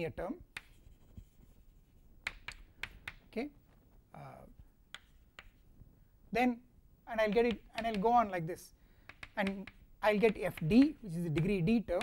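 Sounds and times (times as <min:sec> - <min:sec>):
chalk tapping on blackboard: 0:00.5 - 0:03.2, 0:04.9 - 0:05.6, 0:07.1 - 0:08.4, 0:09.0 - 0:12.0.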